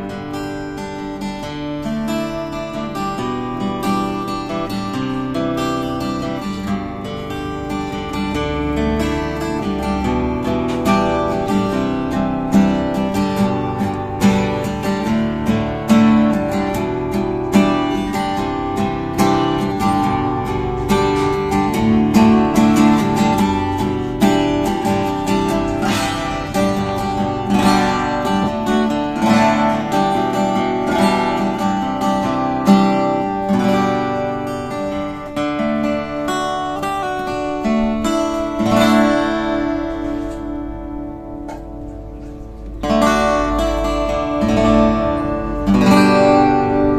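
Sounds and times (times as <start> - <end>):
fingerstyle acoustic guitar: 0.0 - 46.9.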